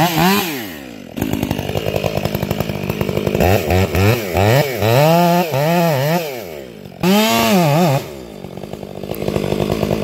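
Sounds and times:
chainsaw cutting tree trunk: 0.0s - 10.0s.

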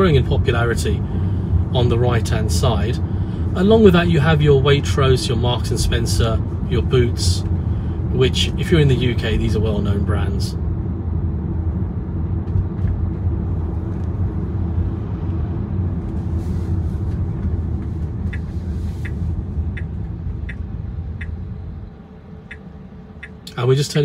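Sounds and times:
car road and engine rumble: 0.0s - 24.0s
turn indicator ticking: 17.4s - 21.6s, 22.4s - 23.6s.

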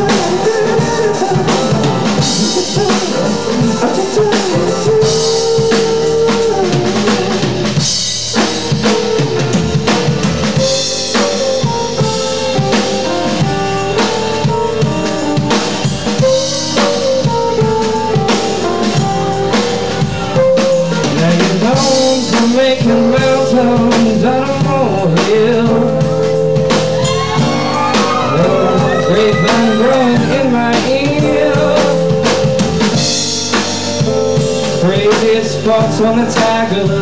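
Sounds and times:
drum kit beat: 0.0s - 37.0s
live rock band playing: 0.0s - 37.0s.

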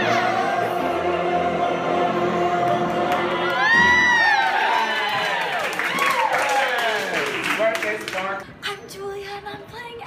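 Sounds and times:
group singing in harmony: 0.0s - 4.4s
high gliding whoops and cheers: 3.4s - 7.3s.

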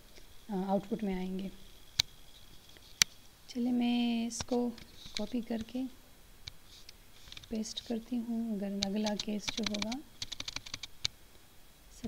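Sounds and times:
computer keyboard typing: 8.8s - 11.1s.

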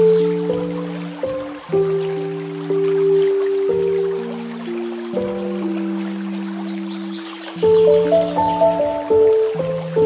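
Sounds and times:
slow calm piano music: 0.0s - 10.0s
trickle of running water: 0.0s - 10.0s.

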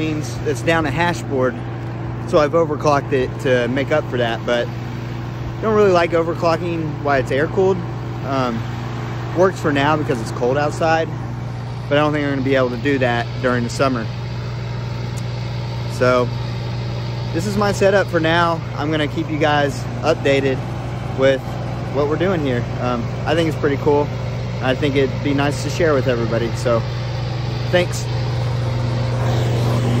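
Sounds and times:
generator engine humming: 0.0s - 30.0s.

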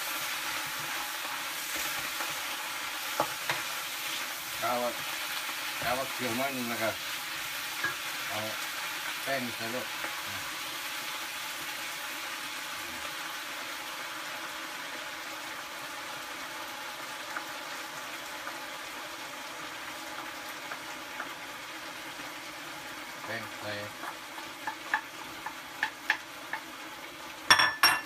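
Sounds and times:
food sizzling in frying pan: 0.0s - 28.0s.

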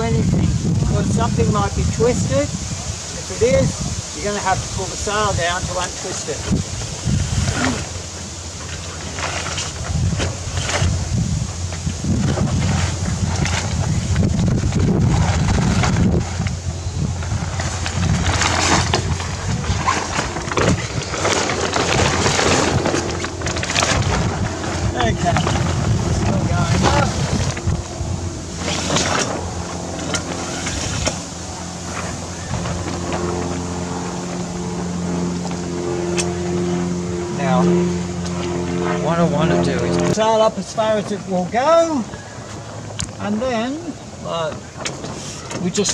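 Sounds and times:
sail rustling and flapping: 0.0s - 45.9s
wind buffeting microphone: 0.0s - 45.9s.

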